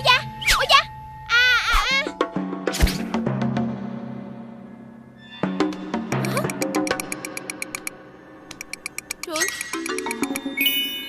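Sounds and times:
light rapid ticking: 0:06.2 - 0:07.9, 0:08.5 - 0:10.4.

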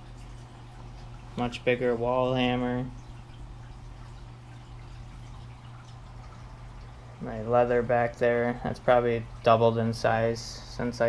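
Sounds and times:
pump humming: 0:00.0 - 0:11.0
water trickling and dripping: 0:00.0 - 0:11.0.

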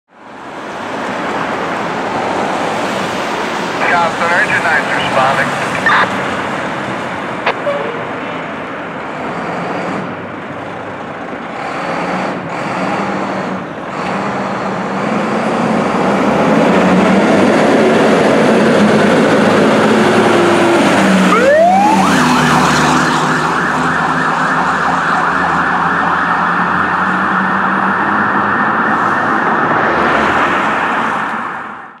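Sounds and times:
fire engine pulling away: 0:00.5 - 0:07.3, 0:08.0 - 0:31.8
siren warbling: 0:04.7 - 0:06.1, 0:07.5 - 0:08.5, 0:20.4 - 0:27.1.

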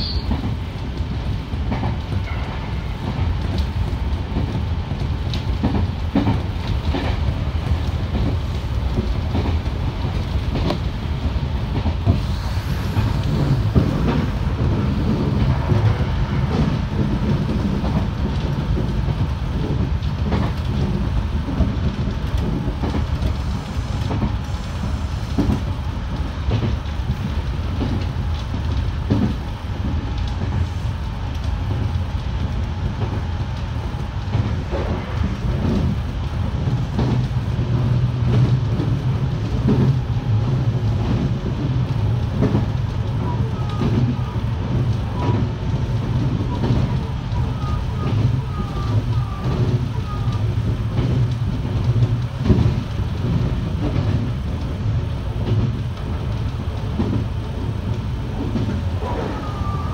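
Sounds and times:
train wheels rumbling on rail: 0:00.0 - 0:59.9.

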